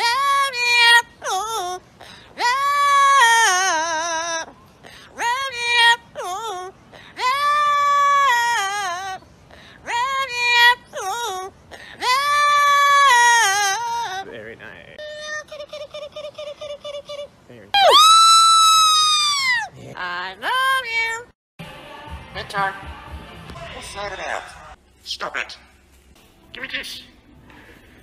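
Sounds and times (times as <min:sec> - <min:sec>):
parrot singing: 0:00.0 - 0:19.7.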